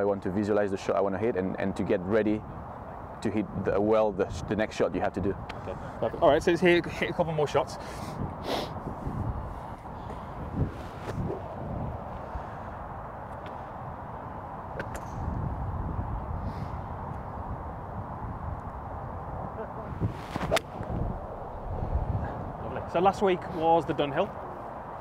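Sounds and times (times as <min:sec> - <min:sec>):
golf club striking ball: 0:20.2 - 0:21.0.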